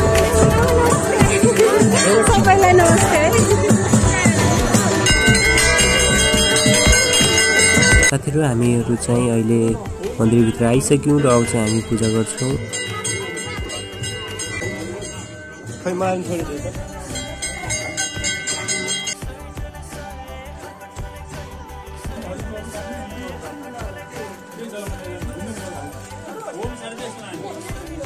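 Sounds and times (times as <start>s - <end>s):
music: 0.0s - 28.0s
brass bell ringing: 1.8s - 8.3s, 10.7s - 19.2s.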